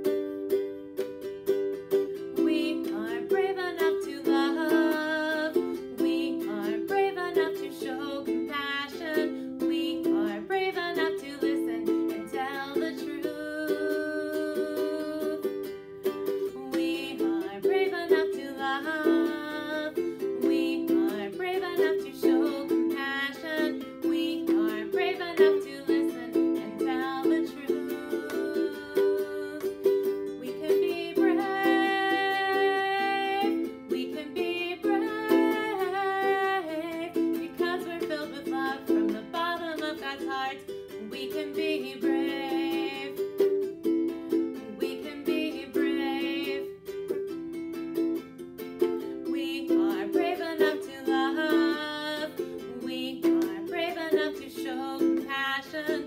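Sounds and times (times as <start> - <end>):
ukulele strumming: 0.0 - 56.0
woman singing: 2.1 - 47.3, 49.0 - 56.0.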